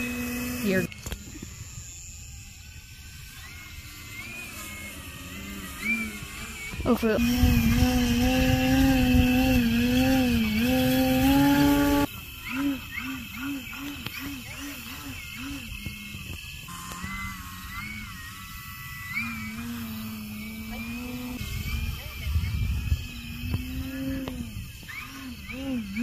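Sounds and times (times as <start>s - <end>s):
model aircraft motor whine: 0.0s - 26.0s.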